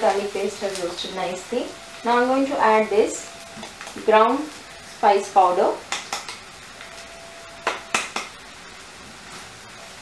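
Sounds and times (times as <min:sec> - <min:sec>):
onions sizzling in a pan: 0:00.0 - 0:10.0
utensils knocking against pan: 0:05.9 - 0:06.4.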